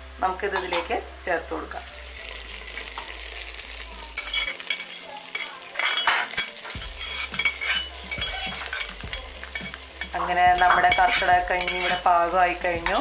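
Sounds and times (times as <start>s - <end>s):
shallots sizzling in hot oil: 0.0s - 13.0s
pan scraping and clinking: 4.2s - 13.0s.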